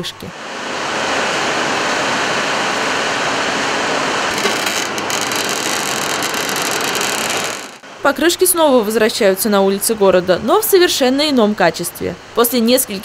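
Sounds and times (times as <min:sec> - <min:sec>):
tyre recycling machinery running: 0:00.4 - 0:07.8
harsh grinding with clicks: 0:04.3 - 0:07.8.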